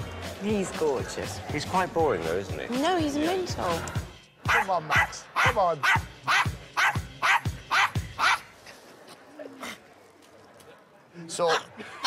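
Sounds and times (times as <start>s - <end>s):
small dog barking: 4.5s - 8.4s.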